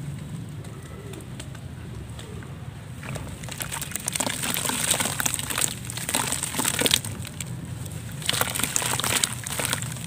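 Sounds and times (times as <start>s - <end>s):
dove cooing: 0.5s - 2.8s
foamy water fizzing in basin: 3.3s - 7.4s, 8.1s - 10.0s.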